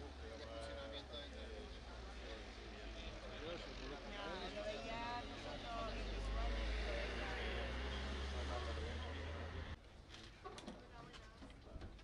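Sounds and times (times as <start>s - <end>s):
indistinct background talking: 0.0s - 9.8s.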